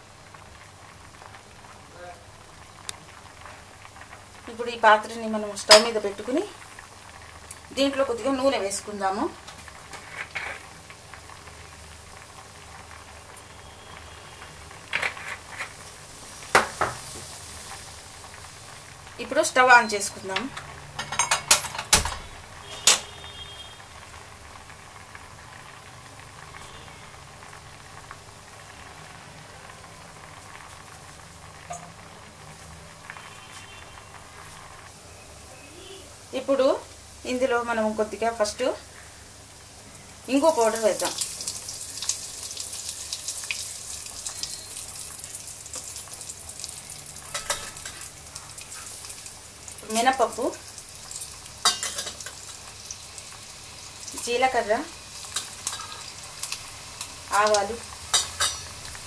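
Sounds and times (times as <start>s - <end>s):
pot boiling and bubbling: 0.0s - 59.0s.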